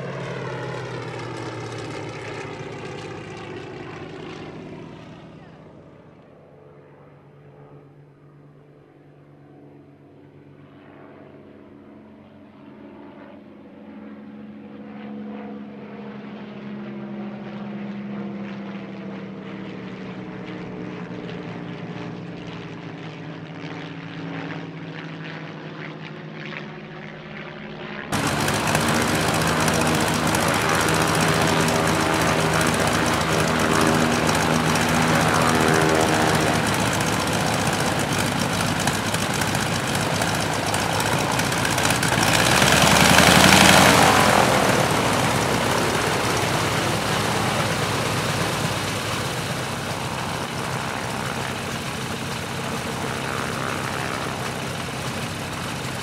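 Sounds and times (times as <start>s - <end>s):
biplane radial engine running: 0.0s - 5.5s, 28.1s - 56.0s
propeller aircraft droning overhead: 0.0s - 56.0s.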